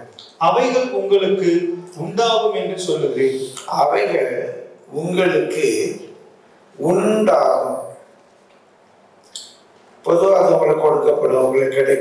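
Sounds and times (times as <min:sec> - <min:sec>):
man speaking: 0:00.0 - 0:08.1, 0:10.0 - 0:12.0.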